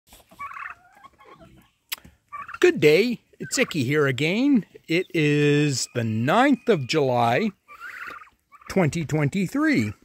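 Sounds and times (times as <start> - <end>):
turkeys and chickens calling: 0.1 - 10.0
turkey gobbling: 0.3 - 10.0.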